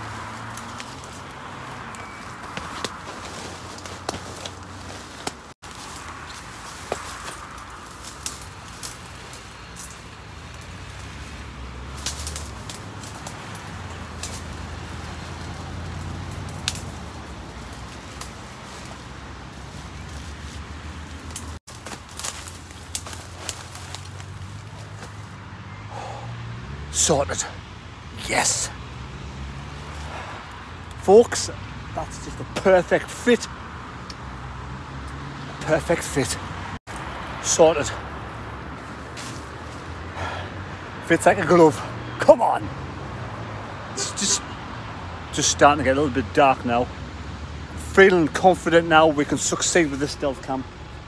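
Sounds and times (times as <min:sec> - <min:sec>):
tent nylon rustling against branches: 0:00.0 - 0:25.6, 0:36.8 - 0:40.2
twigs cracking: 0:00.0 - 0:25.8, 0:26.4 - 0:45.3
road traffic rumble: 0:00.0 - 0:51.0.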